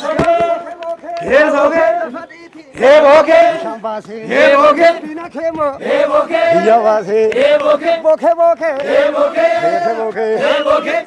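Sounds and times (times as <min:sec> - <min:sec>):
men chanting together: 0:00.0 - 0:02.2, 0:02.8 - 0:11.0.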